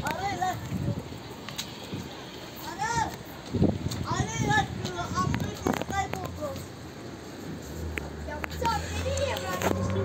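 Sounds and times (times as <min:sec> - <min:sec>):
faint children's voices: 0:08.1 - 0:10.0.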